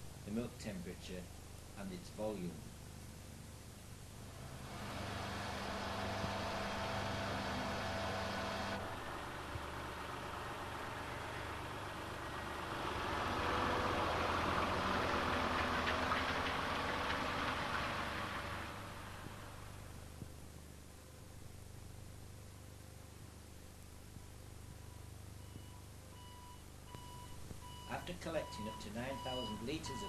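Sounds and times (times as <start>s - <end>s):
steady mechanical hum: 0.0s - 17.3s
diesel lorry pulling away: 4.2s - 20.1s, 26.2s - 30.0s.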